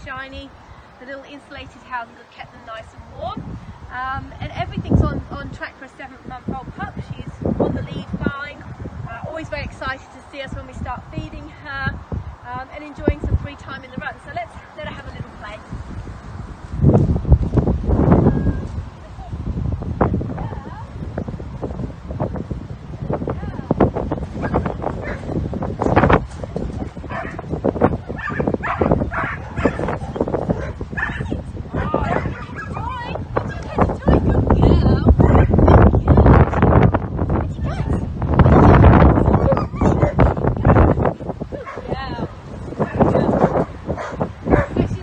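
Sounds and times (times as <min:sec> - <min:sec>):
wind buffeting microphone: 0:00.0 - 0:45.0
puppy yipping and whining: 0:39.4 - 0:40.2.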